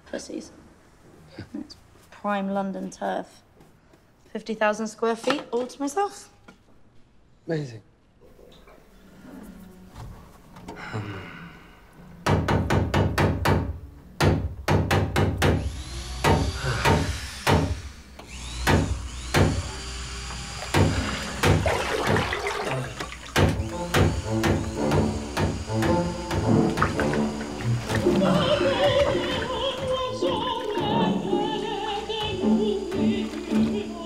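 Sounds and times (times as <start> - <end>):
percussive knocks: 20.8 - 22.3, 23.3 - 28.2
operatic voice singing: 27.9 - 34.0.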